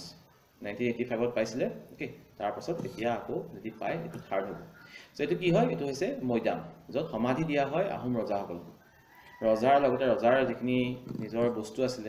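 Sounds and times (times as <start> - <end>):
man lecturing: 0.0 - 8.8, 9.4 - 12.0.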